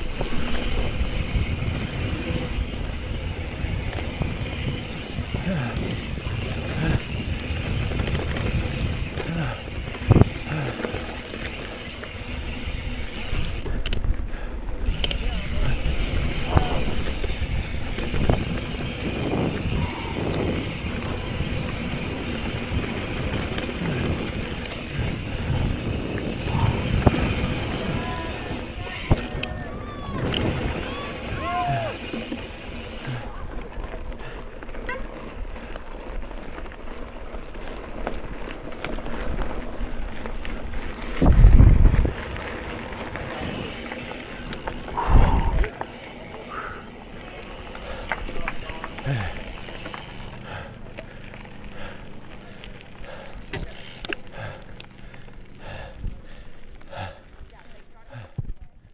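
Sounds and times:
wind rushing over microphone: 0.0 - 10.8, 12.8 - 32.0, 40.7 - 43.8, 44.6 - 45.8
bike rattling over bumps: 0.0 - 58.9
bike tyres rumbling on dirt: 0.0 - 58.9.

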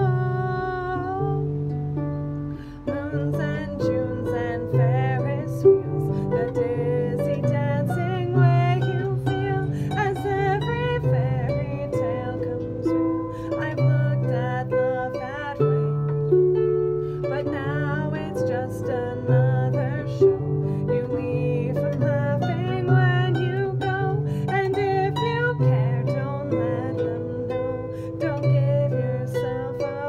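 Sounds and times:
harp plucking a melody: 0.0 - 30.0.

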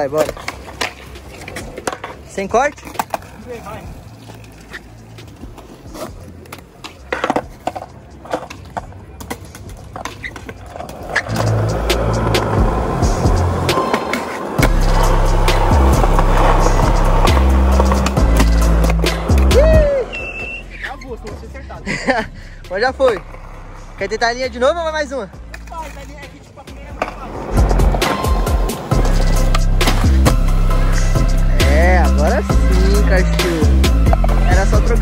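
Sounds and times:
skateboard wheels rolling on pavement: 0.0 - 35.0
music with deep bass: 11.3 - 13.8, 14.6 - 25.5, 27.4 - 35.0.

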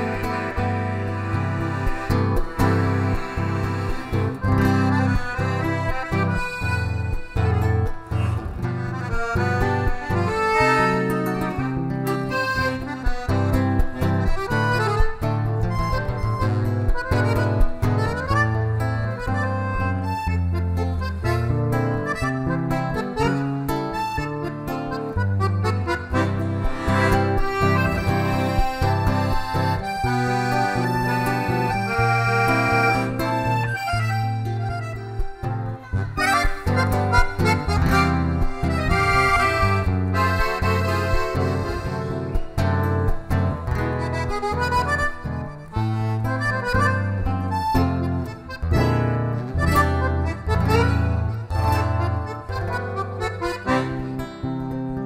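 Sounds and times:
acoustic guitar strumming: 0.0 - 55.0
button accordion melody: 0.0 - 55.0.

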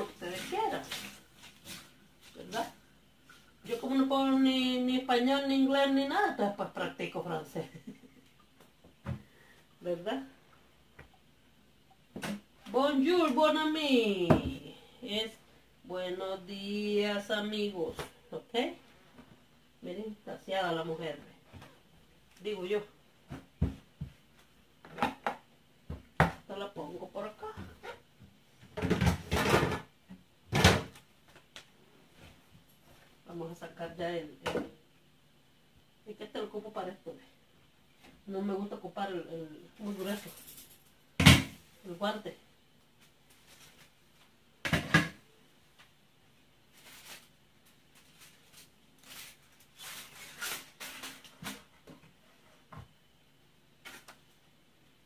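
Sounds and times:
aluminium foil crinkling: 39.9 - 40.9, 46.7 - 51.5.

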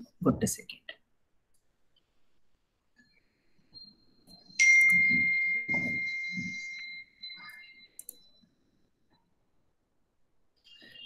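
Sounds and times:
bell-like chime: 4.6 - 7.9.

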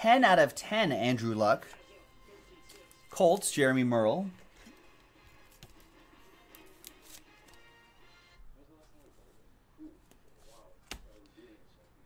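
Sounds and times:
faint background music: 0.0 - 12.0
trading cards clicking: 5.4 - 7.6.

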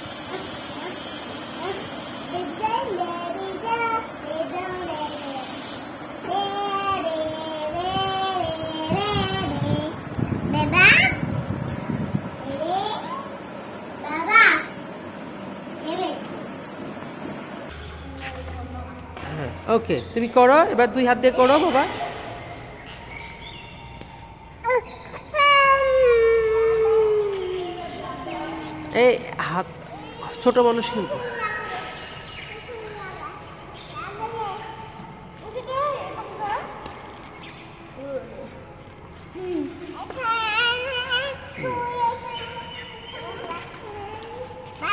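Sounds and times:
child calling: 24.3 - 28.9, 29.9 - 33.4, 39.4 - 44.9
child wailing: 24.6 - 28.9.

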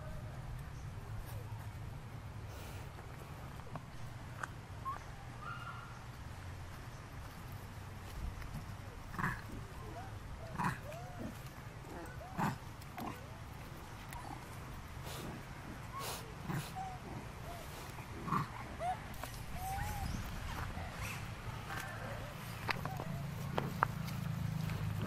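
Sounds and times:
macaque grunt calls: 9.0 - 25.0.

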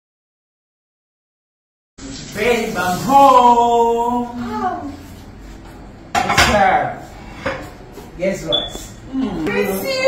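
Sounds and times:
dishes clattering in a sink: 6.1 - 7.8.

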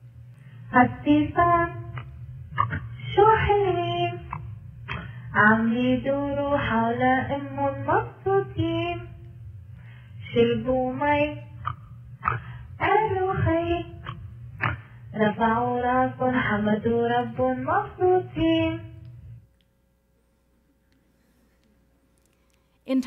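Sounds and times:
high voice singing with music: 0.6 - 9.5, 10.2 - 19.3.

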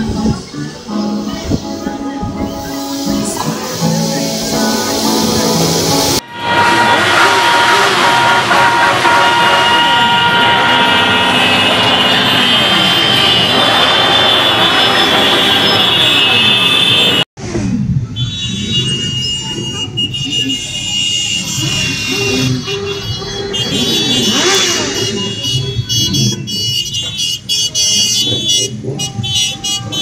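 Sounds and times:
background music: 0.0 - 6.2
horns sounding: 0.0 - 17.3, 18.1 - 30.0
motorcycle engines revving: 0.0 - 30.0.

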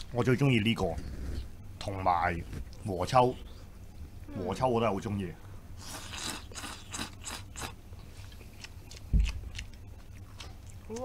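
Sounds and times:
wet noodle slurping: 5.8 - 9.0
soft chewing: 5.8 - 11.0.

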